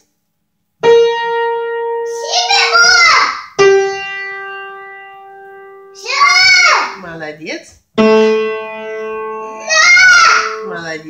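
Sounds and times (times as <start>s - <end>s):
young child's voice: 2.1s - 3.6s, 6.0s - 7.0s, 9.5s - 10.7s.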